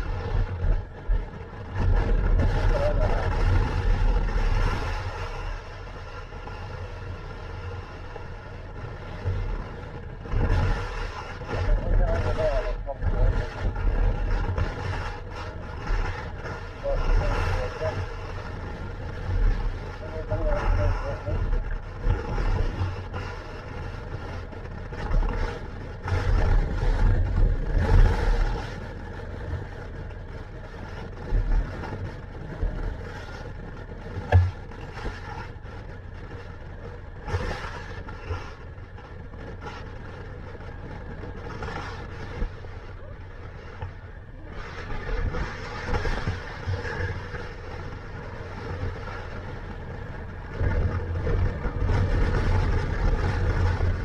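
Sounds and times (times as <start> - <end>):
motorcycle engine running: 0.0 - 54.0
wind buffeting microphone: 0.0 - 54.0.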